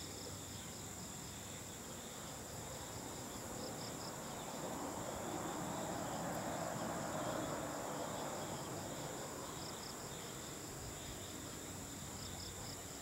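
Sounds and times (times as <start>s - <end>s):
insects trilling: 0.0s - 13.0s
pulsing insect chirp: 0.0s - 13.0s.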